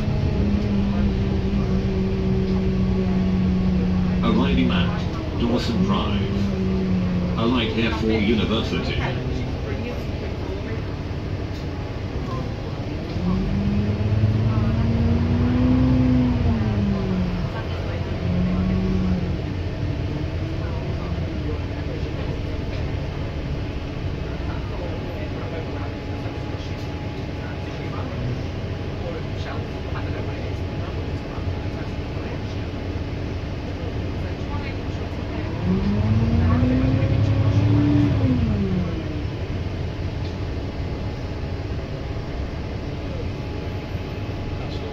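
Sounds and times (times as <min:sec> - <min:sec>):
bus engine drone: 0:00.0 - 0:44.9
road and cabin rumble: 0:00.0 - 0:44.9.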